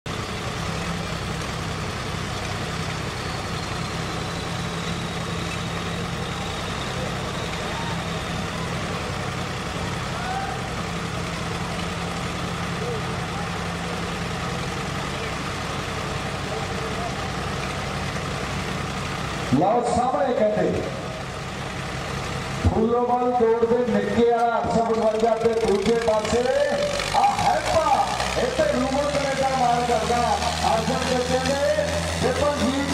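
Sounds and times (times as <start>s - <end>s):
diesel tractor engines idling: 0.1s - 32.9s
indistinct crowd voices: 4.3s - 18.7s.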